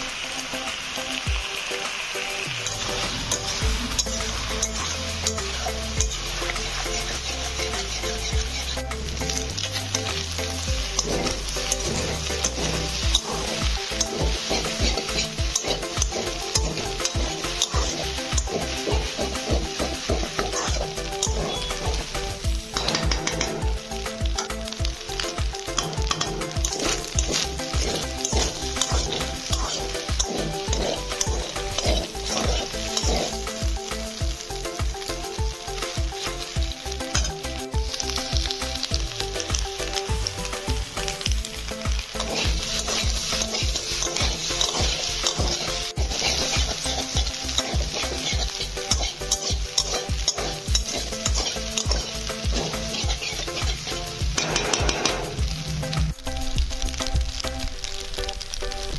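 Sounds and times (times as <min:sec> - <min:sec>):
food sizzling in a wok: 0:00.0 - 0:58.9
metal spatula scraping wok: 0:02.6 - 0:34.2, 0:36.2 - 0:39.7, 0:41.0 - 0:55.6.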